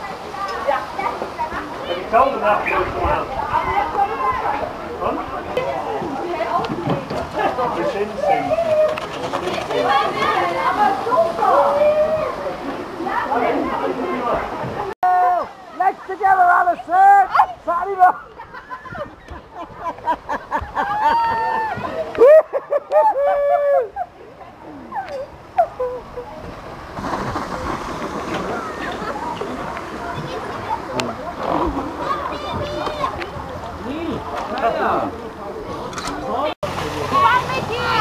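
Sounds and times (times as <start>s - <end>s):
people talking indistinctly: 0.0s - 20.8s, 21.6s - 38.0s
steady rushing noise: 26.2s - 34.4s.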